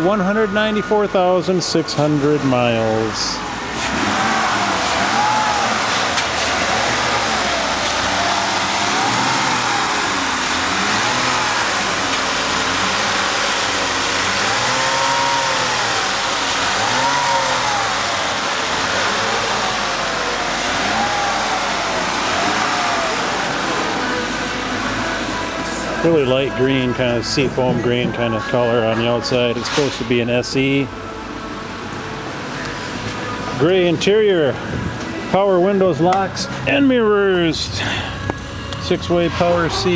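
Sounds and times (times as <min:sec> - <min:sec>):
car engine revving: 0:00.0 - 0:39.9.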